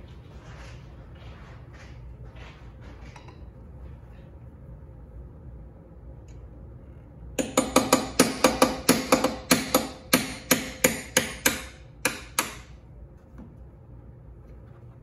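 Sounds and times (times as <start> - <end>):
hammer tapping metal punch: 7.4 - 12.8.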